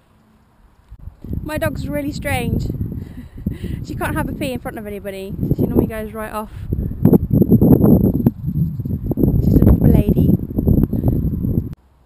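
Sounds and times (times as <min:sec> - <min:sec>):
wind buffeting microphone: 0:00.9 - 0:11.8.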